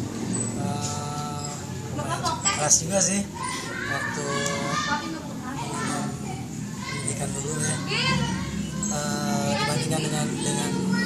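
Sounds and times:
children's voices chattering: 0:00.0 - 0:11.0
faint speech: 0:00.6 - 0:11.0.

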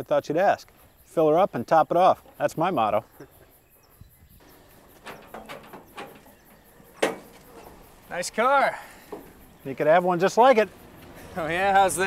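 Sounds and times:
soft knocks: 0:04.4 - 0:08.1, 0:08.9 - 0:09.6.

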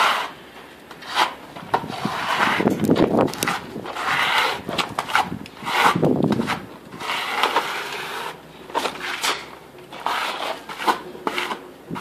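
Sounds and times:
trowel scraping render on wall: 0:00.0 - 0:12.0.

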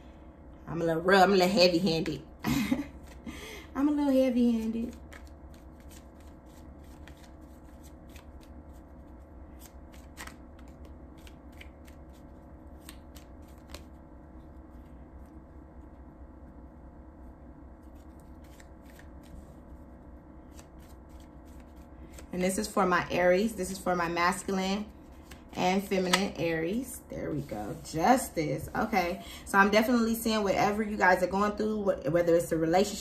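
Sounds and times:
low hum: 0:00.0 - 0:32.8
cards shuffling: 0:02.9 - 0:03.2, 0:04.6 - 0:14.9, 0:17.8 - 0:19.7, 0:20.4 - 0:22.7, 0:25.1 - 0:26.4.

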